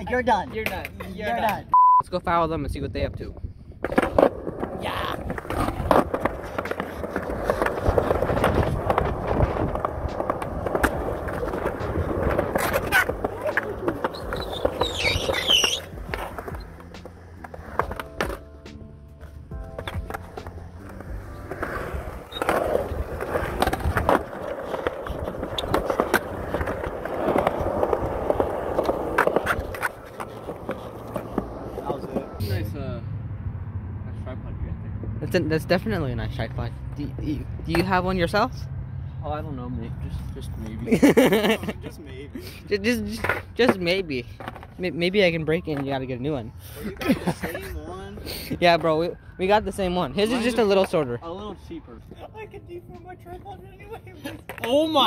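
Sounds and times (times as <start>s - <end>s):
skateboard clacking on ground: 0.5s - 1.6s, 3.8s - 32.4s, 52.9s - 55.0s
skateboard wheels rolling on concrete: 3.3s - 32.7s, 39.8s - 55.0s.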